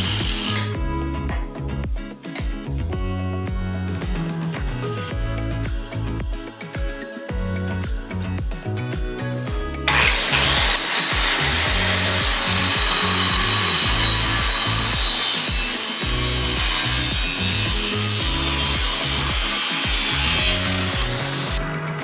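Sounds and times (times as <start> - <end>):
angle grinder cutting steel: 0.0 - 0.8, 9.9 - 21.6
background music with a beat: 0.0 - 22.0.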